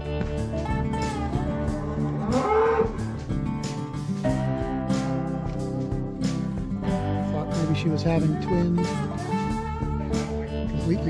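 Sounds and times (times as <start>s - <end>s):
country music with guitar: 0.0s - 11.0s
cow mooing: 1.2s - 3.2s.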